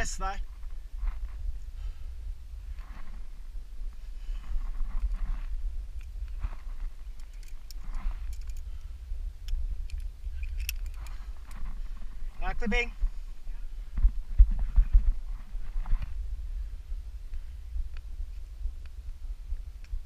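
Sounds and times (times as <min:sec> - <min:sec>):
wind rumble on microphone: 0:00.0 - 0:20.0
heavy breathing: 0:01.6 - 0:02.4.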